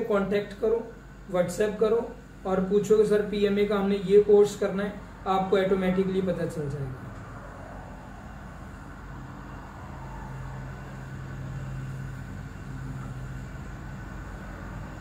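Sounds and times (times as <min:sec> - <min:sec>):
low background noise: 0:00.0 - 0:15.0.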